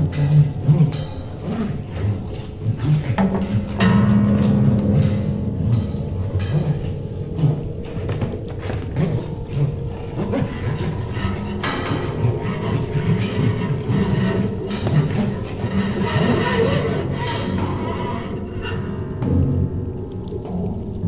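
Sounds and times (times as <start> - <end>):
low bass notes: 0.0 - 17.2
percussive knocks and scrapes: 0.0 - 19.7.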